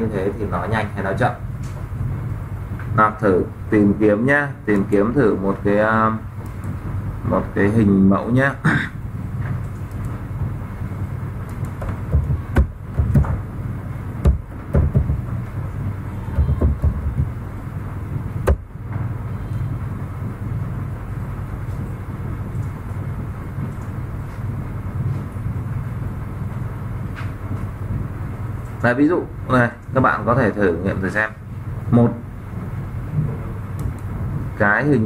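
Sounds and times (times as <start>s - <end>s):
low room hum: 0.0s - 35.0s
keyboard and mouse clicks: 9.5s - 10.2s, 11.4s - 12.4s.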